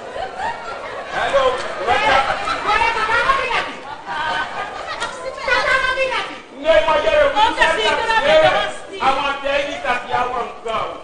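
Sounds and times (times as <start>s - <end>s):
actors talking: 0.0s - 11.0s.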